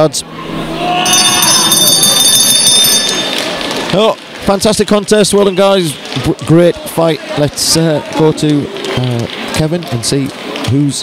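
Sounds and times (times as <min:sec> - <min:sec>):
crowd noise: 0:00.0 - 0:11.0
boxing ring bell ringing: 0:01.0 - 0:03.6.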